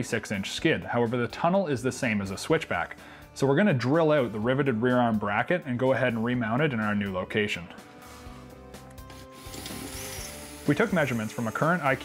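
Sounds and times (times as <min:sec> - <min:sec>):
drill bit grinding metal: 0:09.4 - 0:12.0.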